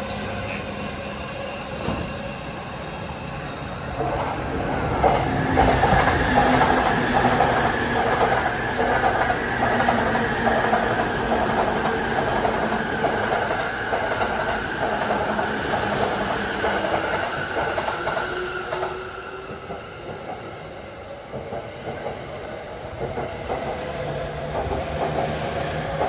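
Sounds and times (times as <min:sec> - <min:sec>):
train wheels on rails: 0:01.6 - 0:02.4, 0:03.4 - 0:26.0.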